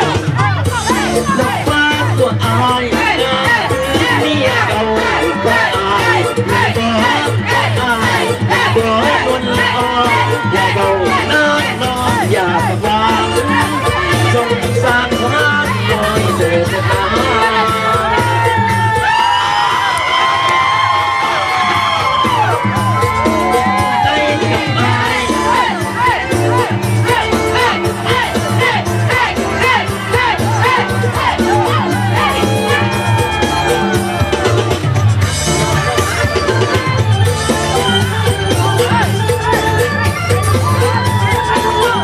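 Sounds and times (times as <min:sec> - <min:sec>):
dance music over loudspeaker: 0:00.0 - 0:42.0
crowd cheering and whooping: 0:02.9 - 0:14.8, 0:15.4 - 0:42.0.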